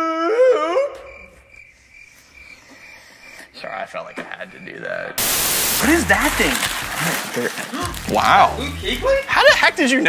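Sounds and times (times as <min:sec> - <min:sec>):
crickets chirping: 0:00.4 - 0:10.0.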